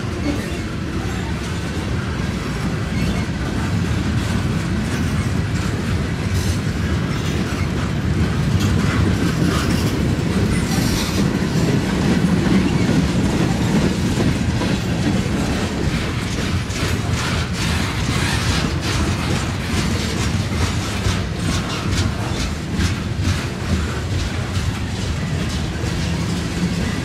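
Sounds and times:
freight train wheels rumbling: 0.0s - 27.0s
wheels clacking over rail joints: 0.0s - 27.0s.

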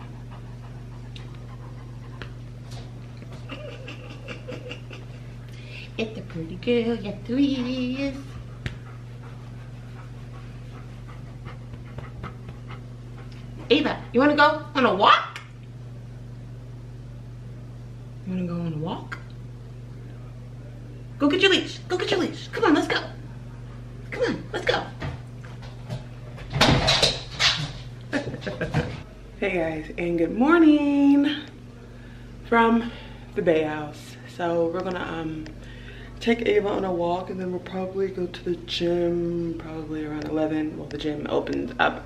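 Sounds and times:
dog panting: 0.0s - 2.8s, 7.0s - 14.5s
steady low hum: 0.0s - 42.0s.

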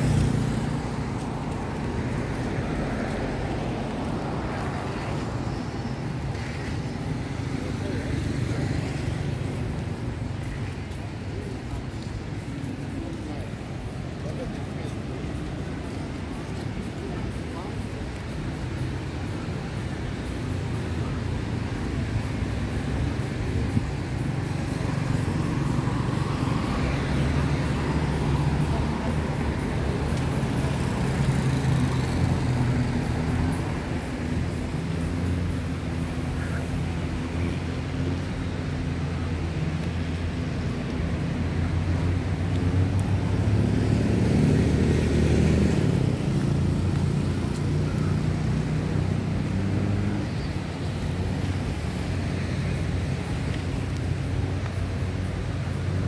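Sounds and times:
road traffic engine drone: 0.0s - 56.0s.

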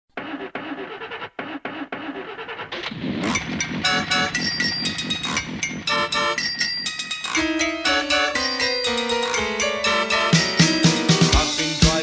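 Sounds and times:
car engine: 0.1s - 7.4s
keyboard-led music: 2.8s - 12.0s.

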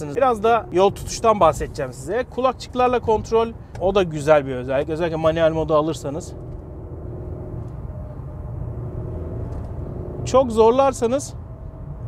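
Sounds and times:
faint engine hum: 0.0s - 12.0s
road and engine rumble in car cabin: 0.0s - 12.0s.

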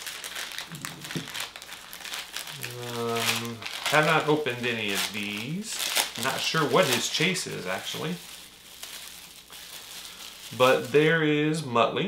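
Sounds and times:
packaging crinkling and rustling: 0.0s - 11.3s
man humming: 2.6s - 3.7s.

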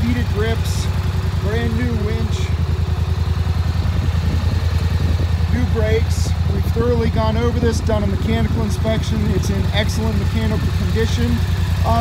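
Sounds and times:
atv engine idling: 0.0s - 12.0s.

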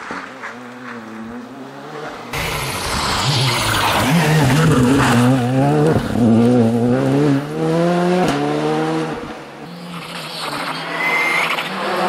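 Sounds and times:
rally car engine at full throttle: 0.0s - 12.0s
tyre noise on road: 0.0s - 12.0s
rally car engine revving: 0.1s - 12.0s.

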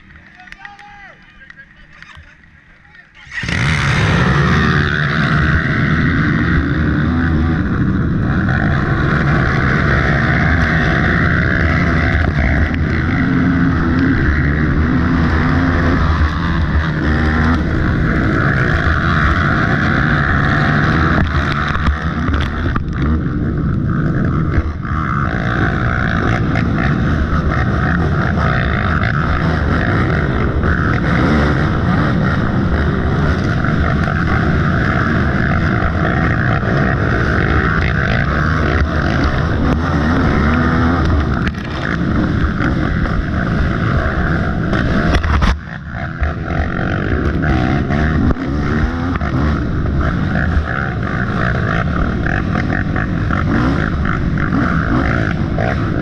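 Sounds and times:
dirt bike engine at high revs: 0.0s - 56.0s.

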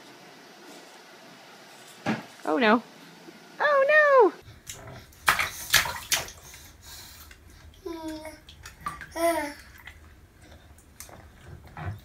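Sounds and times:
bathwater splashing: 4.5s - 12.0s.

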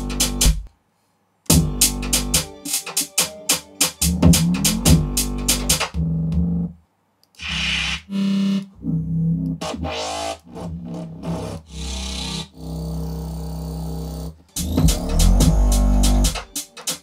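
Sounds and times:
electronic beat: 0.0s - 0.7s, 1.5s - 6.7s, 14.6s - 17.0s
deep synth bass notes: 4.0s - 6.8s, 7.4s - 16.4s.

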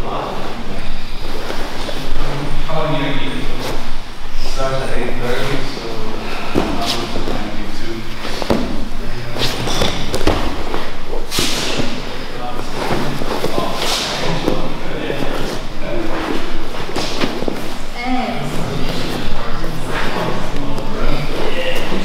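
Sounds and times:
voices: 4.4s - 22.0s
bodies thudding on mats: 8.2s - 12.1s.

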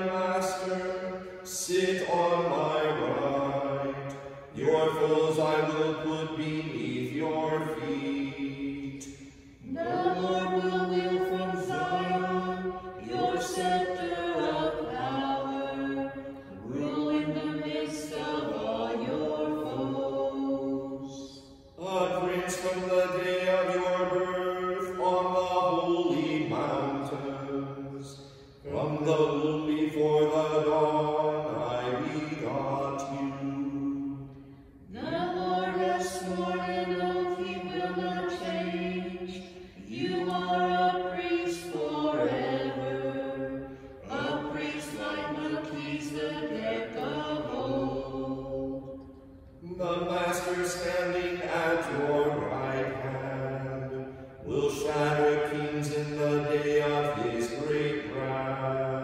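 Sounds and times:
liturgical chant: 0.0s - 59.0s.

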